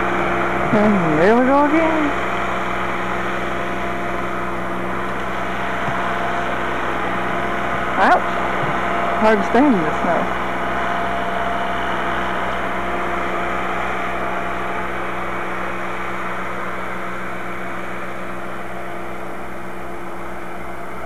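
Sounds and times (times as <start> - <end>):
tractor engine running: 0.0 - 21.0.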